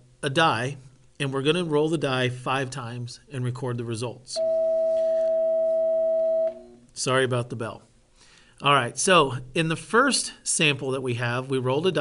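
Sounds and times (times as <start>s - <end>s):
bell steady tone: 4.4s - 6.8s.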